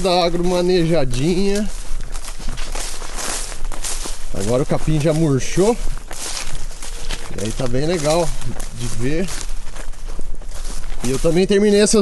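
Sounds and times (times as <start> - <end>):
footsteps on dry grass: 0.0 - 12.0.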